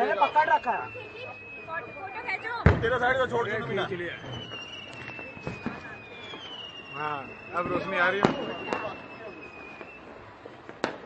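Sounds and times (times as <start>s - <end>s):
firework whistle falling in pitch: 0.0s - 10.2s
firework pops: 2.6s - 3.0s, 4.2s - 6.7s, 7.6s - 9.0s, 10.6s - 11.0s.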